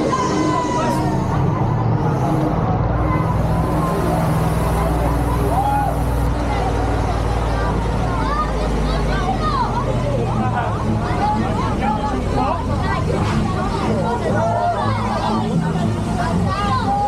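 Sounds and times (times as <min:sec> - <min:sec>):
vehicle engine droning: 0:00.0 - 0:16.9
passengers chattering: 0:00.0 - 0:17.0.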